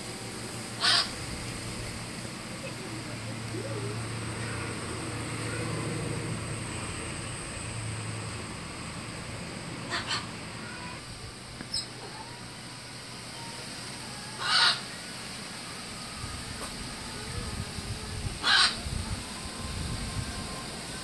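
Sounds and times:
steady low hum: 0.0 - 21.0
bird calls: 0.8 - 1.2, 9.9 - 11.0, 11.6 - 12.3, 14.4 - 15.2, 18.4 - 18.9.

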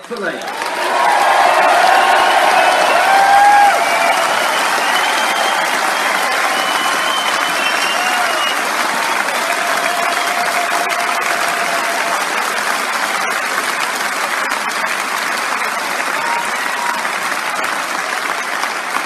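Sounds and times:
audience applauding: 0.0 - 19.0.

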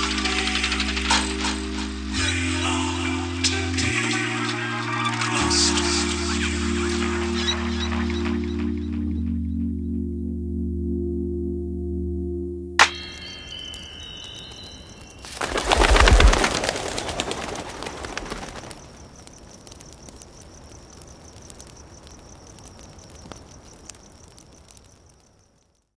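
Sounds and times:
birds wing flapping: 0.0 - 1.8, 13.5 - 25.2
high pulsing chirp: 0.0 - 19.3.

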